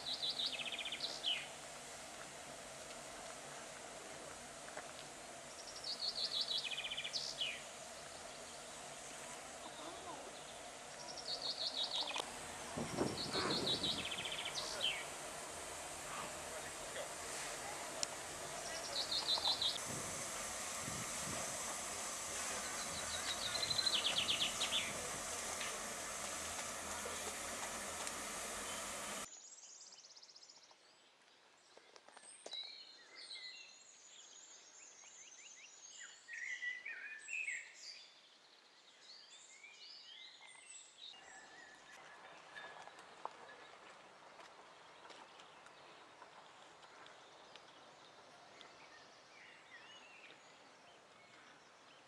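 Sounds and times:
steam locomotive hissing: 0:00.0 - 0:29.3
birdsong: 0:00.0 - 0:52.0.

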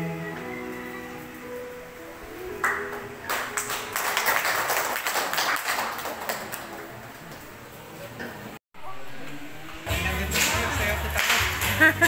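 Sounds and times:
crowd clapping: 0:02.6 - 0:06.8, 0:10.2 - 0:12.0
accompanied singing: 0:09.4 - 0:12.0.

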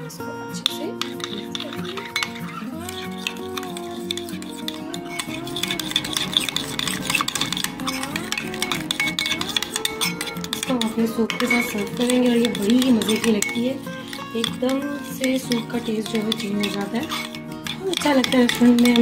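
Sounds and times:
background music with gliding melody: 0:00.0 - 0:19.0
metal spoon stirring sauce in bowl: 0:00.5 - 0:19.0.

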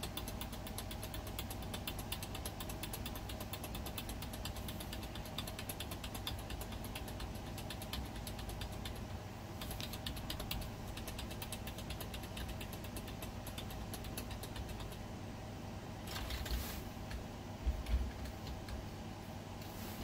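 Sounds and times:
keyboard key tapping: 0:00.0 - 0:15.0
steady low hum: 0:00.0 - 0:20.0.

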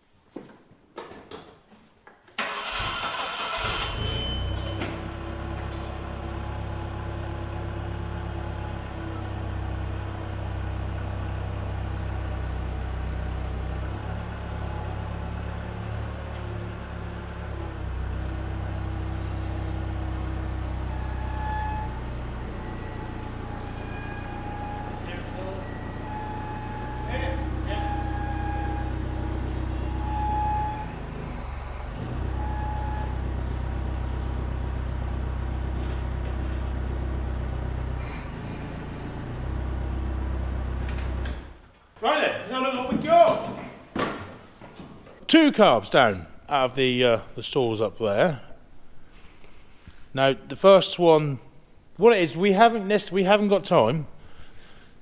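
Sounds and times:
forklift engine running: 0:02.4 - 0:41.7
thin high whine: 0:18.0 - 0:33.2.

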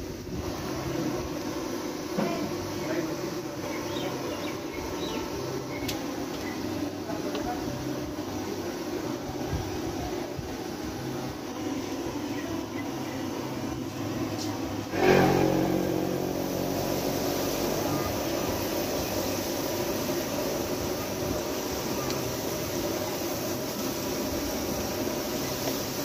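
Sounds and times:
food deep-frying in oil: 0:00.0 - 0:26.0
street clatter: 0:11.2 - 0:26.0
low hum: 0:14.8 - 0:21.3.

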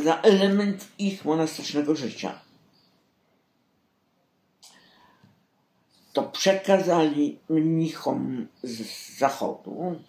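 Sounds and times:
short faint breath: 0:04.7 - 0:05.5.

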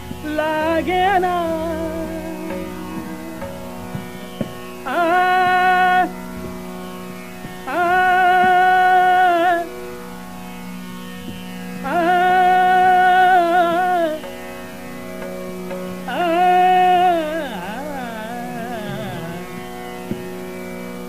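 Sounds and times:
classical singing with held notes: 0:00.0 - 0:06.6, 0:07.5 - 0:10.0, 0:11.8 - 0:20.3
steady drone: 0:00.0 - 0:21.0.

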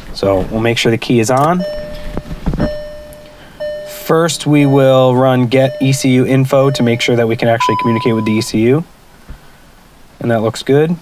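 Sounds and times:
car warning chime beeping: 0:01.5 - 0:08.8.

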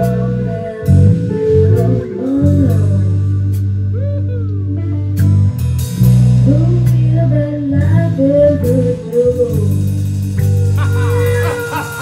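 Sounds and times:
woman singing: 0:00.0 - 0:03.6, 0:06.4 - 0:10.6
live rock band playing: 0:00.0 - 0:12.0.

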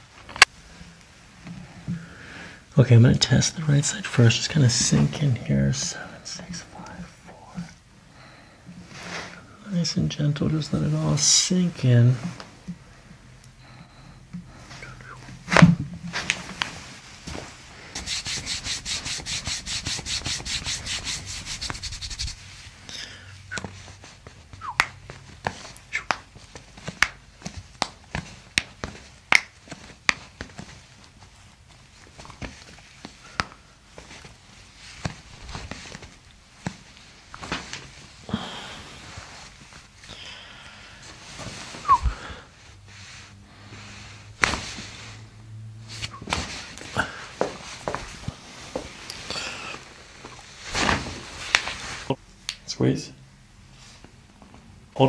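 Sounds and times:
neck adjustment crack: 0:14.4 - 0:22.4, 0:23.5 - 0:40.2, 0:44.4 - 0:44.9, 0:45.9 - 0:52.7
hands rubbing on skin: 0:16.1 - 0:22.6.

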